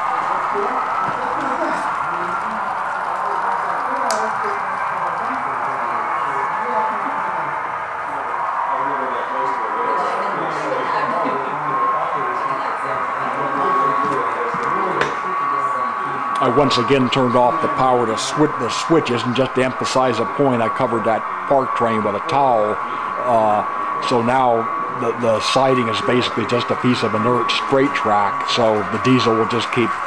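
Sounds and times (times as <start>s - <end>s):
wheels rumbling on track: 0.0s - 8.7s
model train motor whine: 0.0s - 30.0s.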